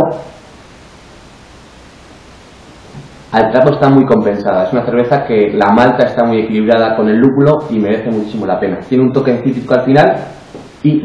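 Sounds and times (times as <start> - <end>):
room noise hiss: 0.0 - 11.0
man speaking: 3.3 - 11.0.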